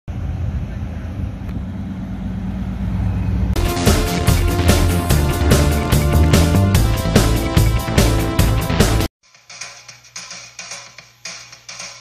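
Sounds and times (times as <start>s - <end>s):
car engine driving by: 0.1s - 7.0s
upbeat intro music: 3.6s - 12.0s.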